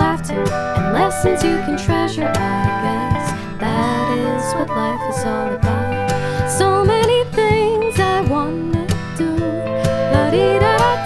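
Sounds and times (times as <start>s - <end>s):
acoustic guitar: 0.0s - 11.0s
wavering melody line: 0.2s - 7.0s, 9.6s - 11.0s.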